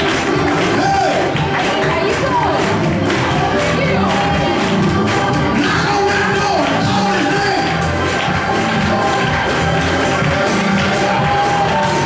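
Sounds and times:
band playing worship music: 0.0s - 12.0s
drum kit: 0.0s - 12.0s.

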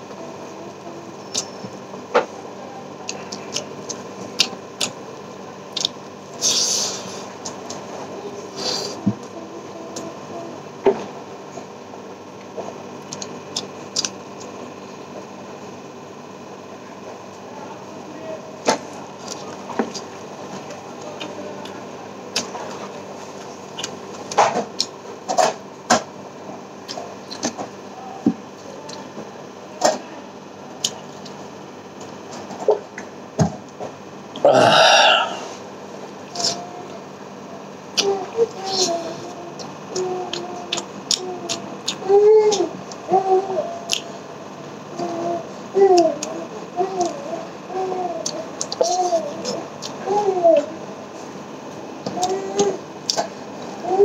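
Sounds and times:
faint steady hum: 0.0s - 54.0s
wet chewing and lip smacks: 5.7s - 6.0s, 13.0s - 14.5s
person burping: 34.4s - 35.5s.

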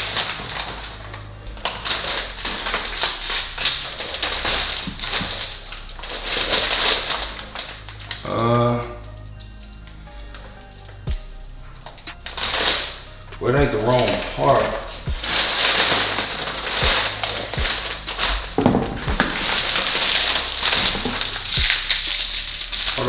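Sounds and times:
packing paper rustling and crackling: 0.0s - 11.1s, 11.9s - 23.0s.

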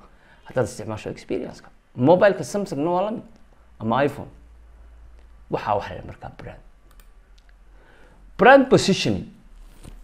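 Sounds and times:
faint mouse clicks: 6.8s - 7.6s.

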